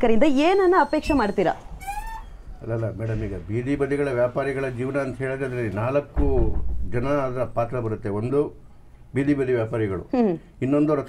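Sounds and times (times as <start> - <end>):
woman speaking in wavering voice: 0.0 - 1.7.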